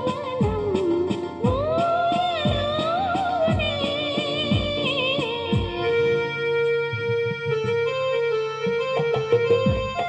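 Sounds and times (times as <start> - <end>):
person singing: 0.0 - 6.0
electronic keyboards held notes: 0.0 - 10.0.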